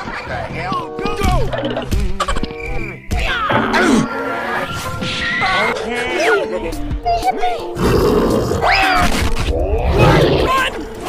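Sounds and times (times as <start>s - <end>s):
background music: 0.0s - 11.0s
monster grunting growl: 7.8s - 8.6s, 9.5s - 10.7s.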